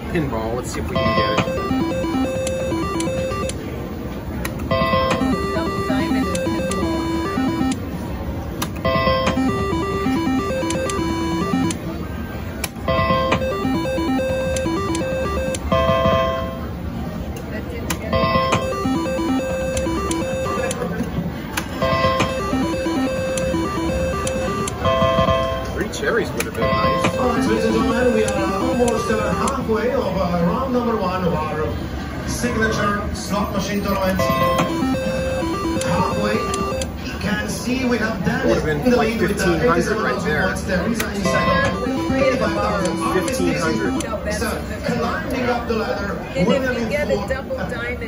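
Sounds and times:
casino background din: 0.0 - 48.0
slot machine electronic beeping tune: 0.9 - 3.7, 4.6 - 8.0, 8.8 - 12.0, 12.8 - 16.8, 18.1 - 21.0, 21.6 - 26.0, 26.6 - 30.0, 34.2 - 37.0, 41.2 - 44.2.

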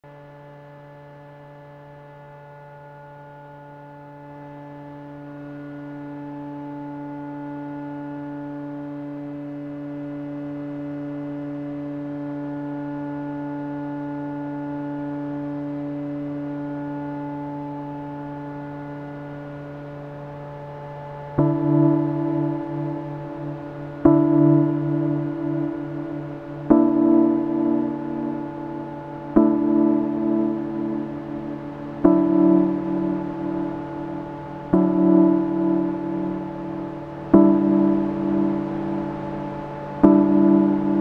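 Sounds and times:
low steady drone: 0.1 - 41.0.

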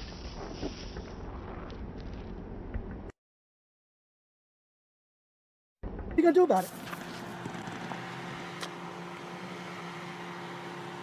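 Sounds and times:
steady machine hum: 6.8 - 11.0.

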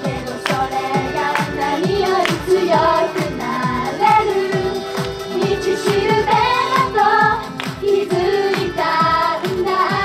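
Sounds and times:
girls group singing: 0.0 - 10.0
pop backing track: 0.0 - 10.0.

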